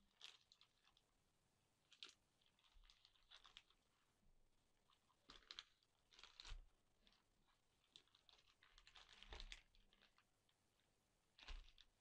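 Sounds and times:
plastic bags crinkling: 0.1s - 1.0s, 1.9s - 3.8s, 4.9s - 7.2s, 7.8s - 10.3s, 11.4s - 12.0s.

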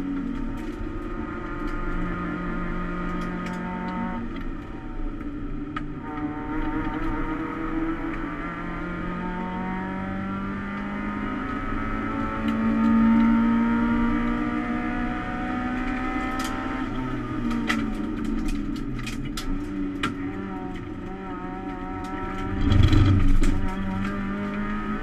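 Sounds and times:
race car engine accelerating: 6.0s - 18.0s, 20.0s - 25.0s.

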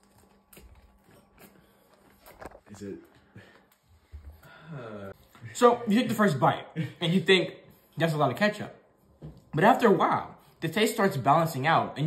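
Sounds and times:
chewing cookie: 0.0s - 2.7s.

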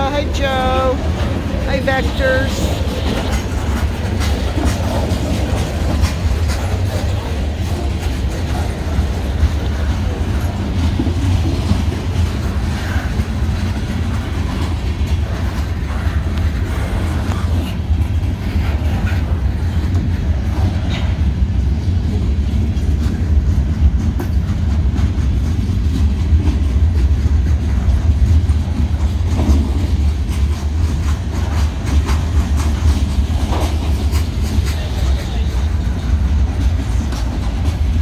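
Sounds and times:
freight train rumbling past: 0.0s - 38.0s
train wheel clicks: 0.0s - 38.0s.

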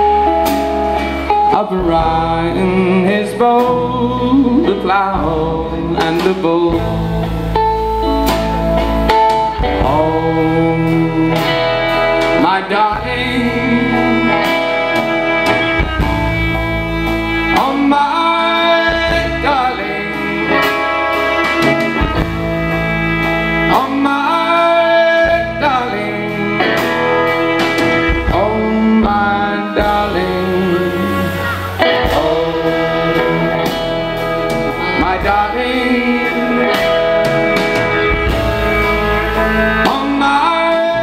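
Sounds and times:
folk band playing slow song: 0.0s - 41.0s.

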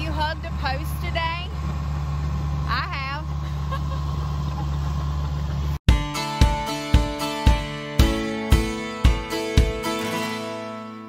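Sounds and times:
engine idling: 0.0s - 10.2s
plucked-string music: 5.9s - 11.0s.

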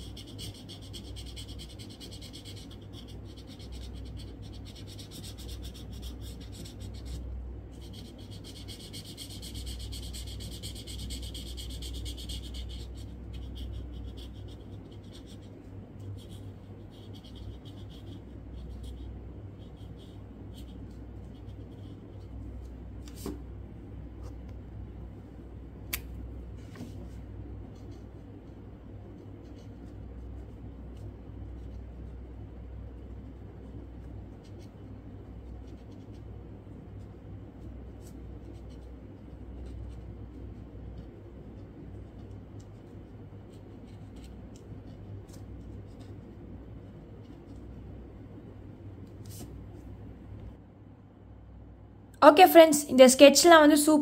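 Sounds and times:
felt-tip pen scratching on paper: 0.0s - 22.6s, 27.7s - 47.9s
low steady hum: 0.0s - 54.0s.

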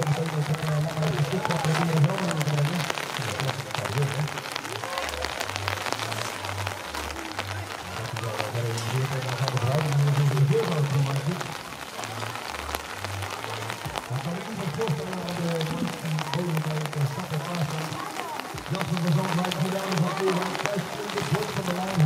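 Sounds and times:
background music: 0.0s - 22.0s
rain pattering: 0.0s - 22.0s.

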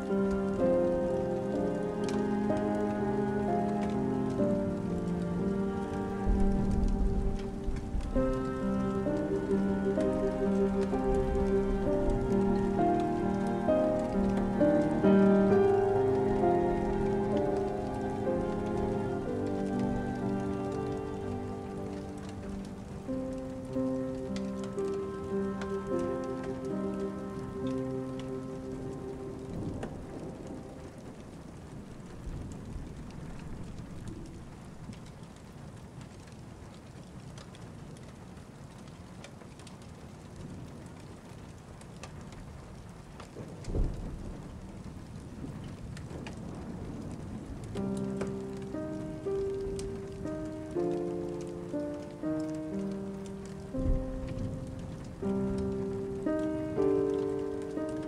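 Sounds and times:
slow instrumental music: 0.0s - 31.2s, 47.6s - 58.0s
steady rain: 0.0s - 58.0s.

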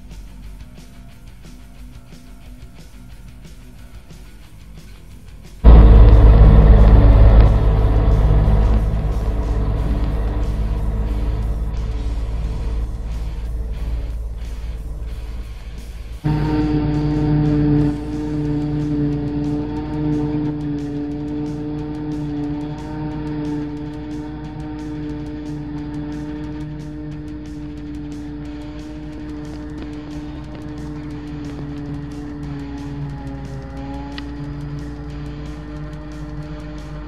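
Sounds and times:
faint background music: 0.0s - 37.0s
forage harvester engine drone: 5.6s - 37.0s.

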